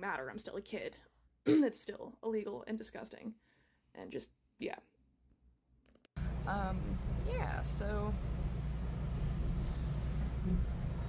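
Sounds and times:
steady low rumble: 6.2s - 11.0s.

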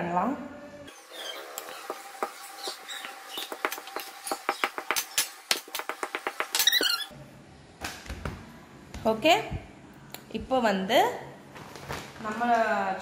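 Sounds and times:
hands patting dough on countertop: 1.7s - 6.9s.

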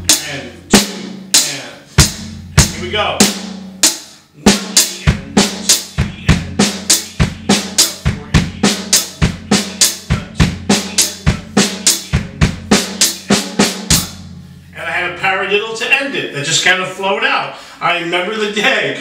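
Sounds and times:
drum kit playing: 0.0s - 15.9s.

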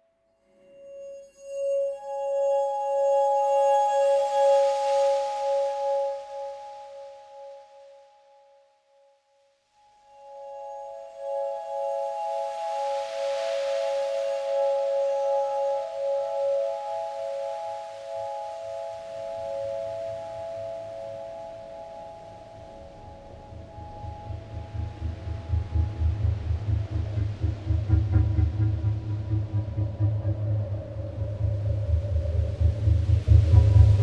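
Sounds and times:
low pulsing rumble: 25.3s - 34.0s.

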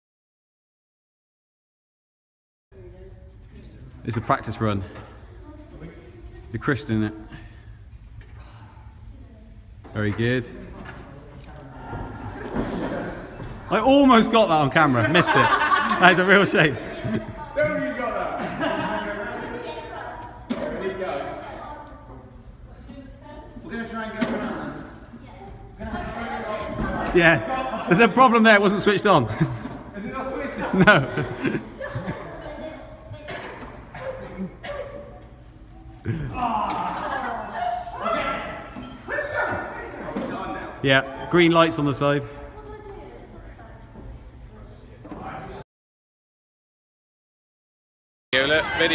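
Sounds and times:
low room hum: 2.7s - 45.6s
low background voices: 4.8s - 13.8s.

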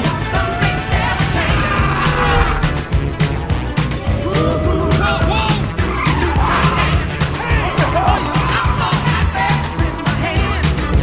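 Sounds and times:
music with drum beat: 0.0s - 11.0s
car tyres squealing: 5.5s - 8.6s.

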